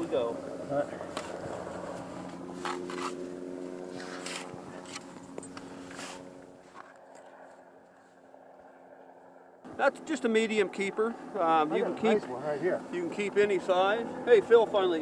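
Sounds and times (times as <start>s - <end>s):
low engine-like hum: 0.0s - 15.0s.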